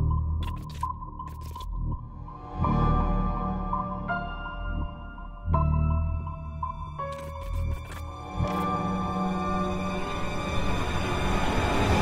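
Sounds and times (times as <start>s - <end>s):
ambient music with low drone: 0.0s - 12.0s.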